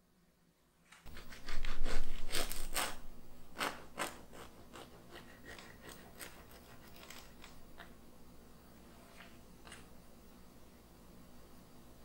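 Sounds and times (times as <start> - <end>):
bread knife sawing through crust: 1.1 - 3.0, 3.6 - 7.1.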